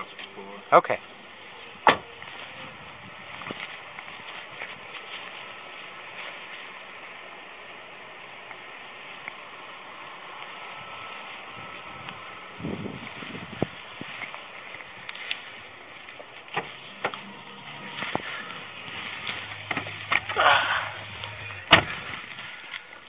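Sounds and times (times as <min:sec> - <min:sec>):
steady hiss and rumble: 0:00.0 - 0:23.0
rustling: 0:01.4 - 0:07.1, 0:13.0 - 0:23.0.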